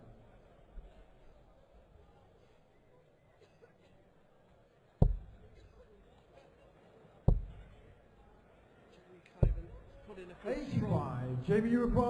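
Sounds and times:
low background murmur: 0:00.0 - 0:12.0.

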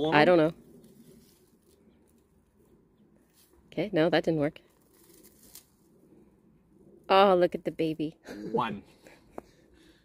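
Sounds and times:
straw and soil rustling: 0:00.0 - 0:08.0.

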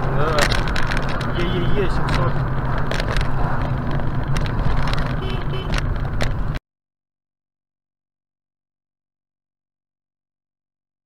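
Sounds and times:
car engine and road rumble: 0:00.0 - 0:06.6.

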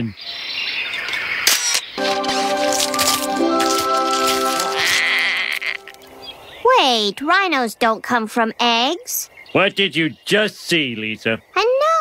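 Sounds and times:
cartoon eggshell cracking: 0:02.2 - 0:06.0.

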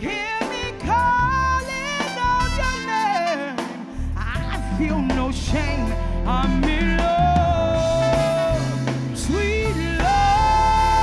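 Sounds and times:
live brass band music: 0:00.0 - 0:11.0.

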